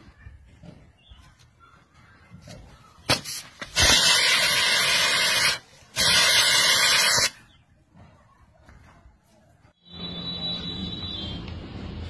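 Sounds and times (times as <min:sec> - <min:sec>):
loud hiss: 0:03.1 - 0:07.4.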